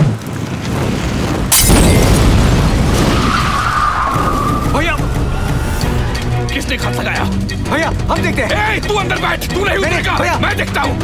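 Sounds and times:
low explosion rumble: 0:00.0 - 0:06.9
tyres screeching: 0:03.0 - 0:06.7.

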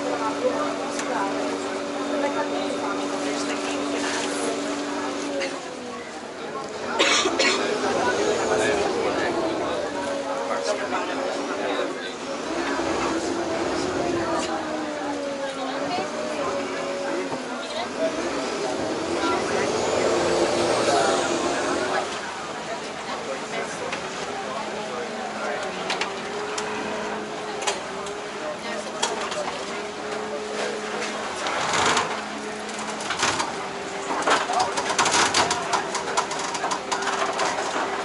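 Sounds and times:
background voices: 0:00.0 - 0:38.0
boat engine: 0:00.0 - 0:38.0
water wash: 0:00.0 - 0:38.0.

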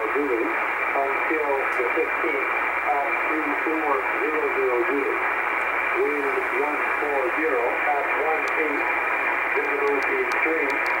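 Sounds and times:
muffled voice over radio: 0:00.0 - 0:05.3, 0:05.9 - 0:11.0
radio static: 0:00.0 - 0:11.0.

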